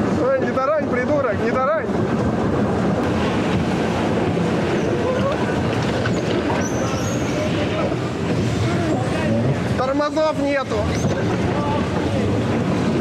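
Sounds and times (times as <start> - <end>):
bumper cars rolling: 1.8 - 13.0
faint voices: 4.6 - 13.0.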